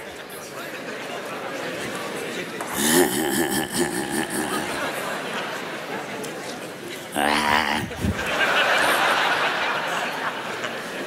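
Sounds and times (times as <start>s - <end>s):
loud burst of laughter: 2.7s - 5.2s, 7.1s - 10.1s.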